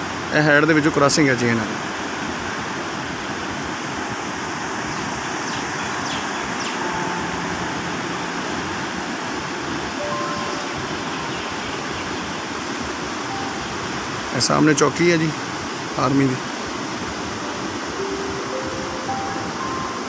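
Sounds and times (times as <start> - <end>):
river water rushing: 0.0 - 20.0.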